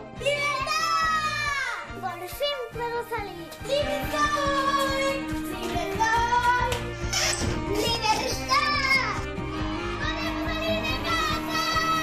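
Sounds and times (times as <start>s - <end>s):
children shouting excitedly: 0.2s - 3.1s, 7.6s - 12.0s
music with steady beat: 1.8s - 12.0s.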